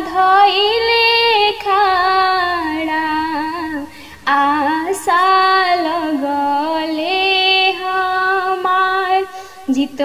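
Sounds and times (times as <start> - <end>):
woman singing devotional song: 0.0 - 10.0
quick breath: 9.3 - 9.7.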